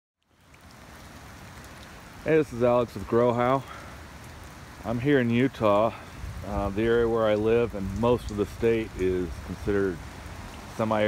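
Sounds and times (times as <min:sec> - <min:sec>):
rain falling on asphalt: 0:00.2 - 0:11.0.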